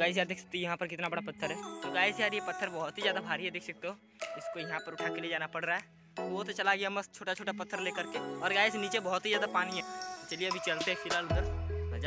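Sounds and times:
background music with chimes: 0.0 - 12.0
man speaking: 0.0 - 12.0.

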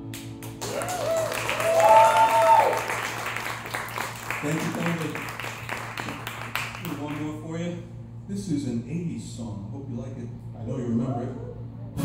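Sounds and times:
audience clapping: 0.0 - 7.4.

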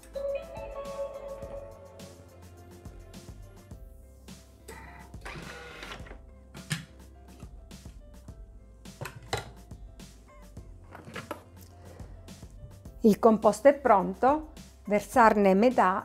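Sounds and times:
quiet background music: 0.0 - 16.0.

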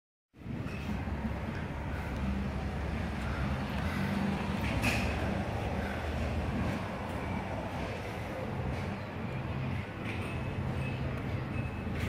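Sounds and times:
low engine rumble and hum: 0.4 - 12.0.

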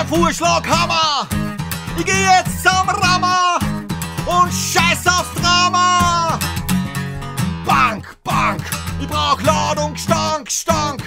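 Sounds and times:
person singing: 0.0 - 1.3, 1.9 - 6.5, 7.6 - 11.0
strummed acoustic guitar: 0.0 - 11.0.

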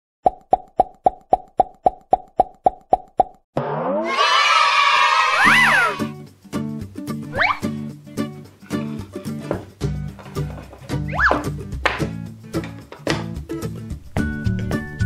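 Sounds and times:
upbeat children's music: 4.1 - 15.0.

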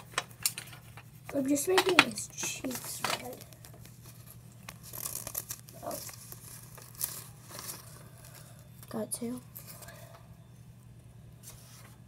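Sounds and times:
paper rustling: 0.0 - 10.0, 11.4 - 12.0.

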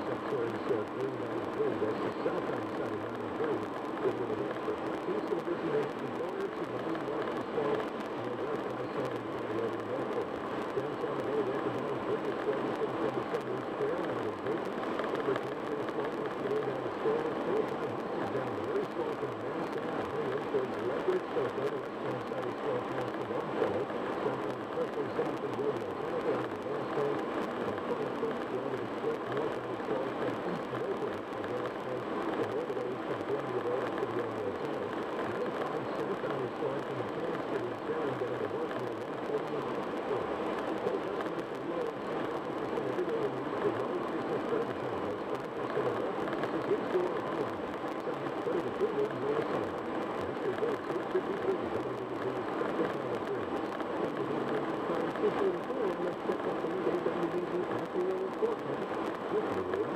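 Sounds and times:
faint radio talk: 0.0 - 59.9.

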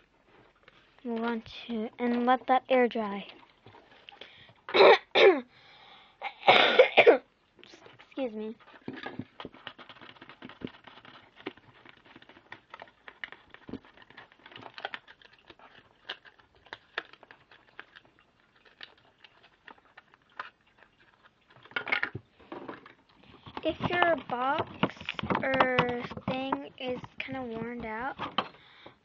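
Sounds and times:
plastic container clicks and crinkles: 8.3 - 29.0.

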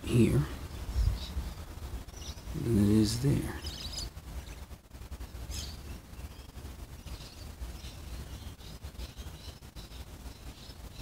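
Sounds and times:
low rumble on microphone: 0.0 - 8.8
bird chirps: 0.6 - 4.7, 5.5 - 11.0.

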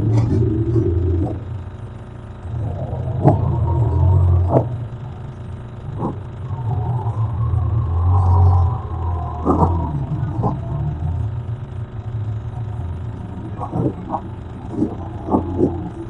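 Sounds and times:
loud steady low rumble: 0.0 - 16.0
faint wavering high tone: 2.4 - 16.0.

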